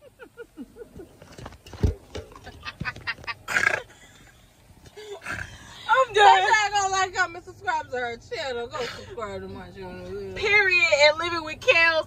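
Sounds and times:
woman laughing: 0.0 - 1.2.

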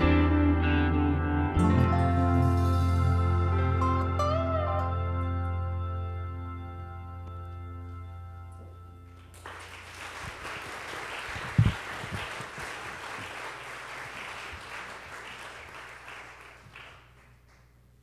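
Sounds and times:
congregation applauding: 9.1 - 18.0.

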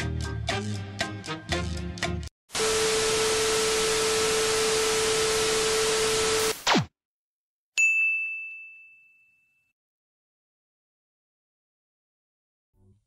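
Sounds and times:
high bell ding: 7.8 - 9.8.

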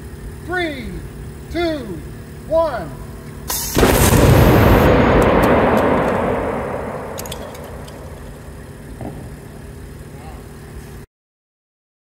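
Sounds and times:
loud electrical discharge bang: 3.5 - 9.7
sharp electric crackles: 3.5 - 10.1
rumbling echo: 3.8 - 9.7.

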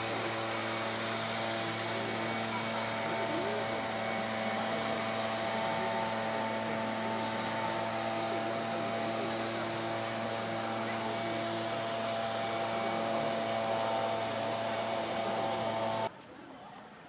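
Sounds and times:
machine-like hum of held tones: 0.0 - 16.1
distant crowd murmur: 0.0 - 17.0.

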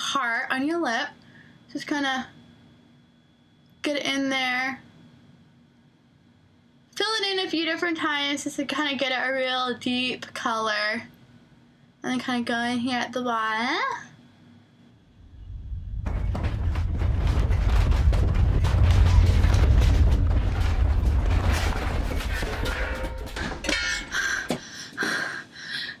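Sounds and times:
earthquake rumble: 15.2 - 24.5
loose objects rattling: 15.5 - 24.6.

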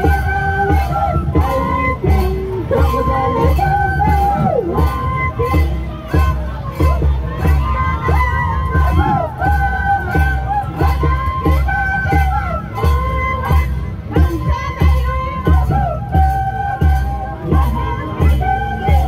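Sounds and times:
crowd noise: 0.0 - 19.0.

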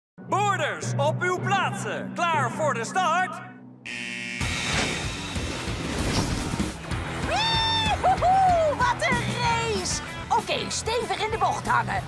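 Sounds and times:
upbeat cartoon music: 0.2 - 12.0
high electronic beep: 3.9 - 4.7.

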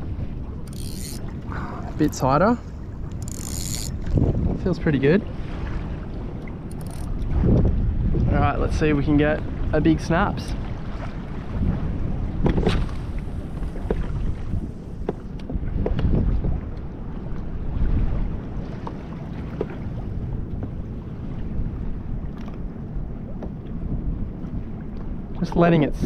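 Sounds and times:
water lapping at a hull: 0.0 - 26.0
wind buffeting microphone: 0.0 - 26.0.

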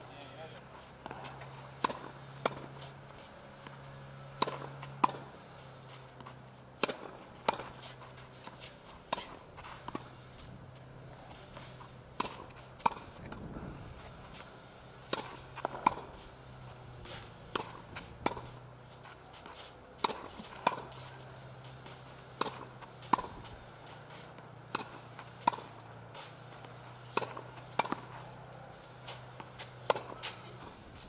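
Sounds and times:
tennis ball bouncing on clay: 0.5 - 31.0
tennis racket striking ball: 0.8 - 31.0.

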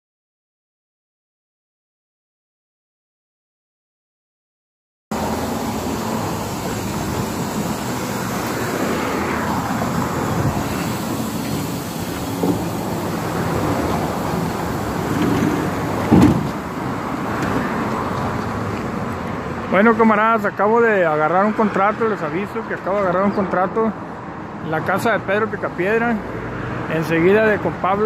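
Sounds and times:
street traffic: 5.1 - 28.0.

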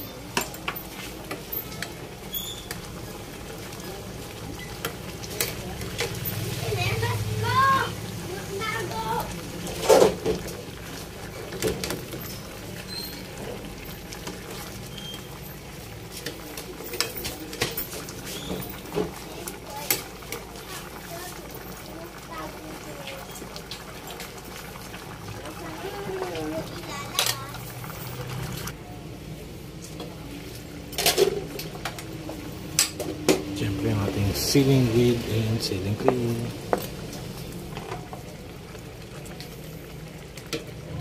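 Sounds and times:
metal spoon stirring in pot: 0.0 - 6.6, 9.5 - 19.2.

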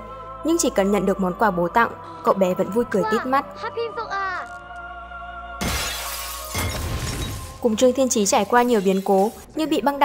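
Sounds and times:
soft background music: 0.0 - 10.0
window glass shattering: 5.6 - 7.6.

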